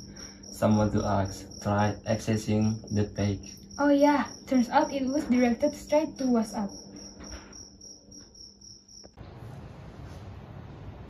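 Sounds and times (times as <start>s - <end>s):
cricket chirping: 0.0s - 9.2s
low room hum: 0.0s - 11.0s.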